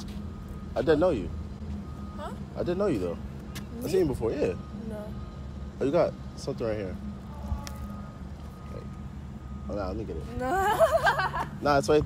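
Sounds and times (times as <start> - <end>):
low steady background rumble: 0.0 - 12.0.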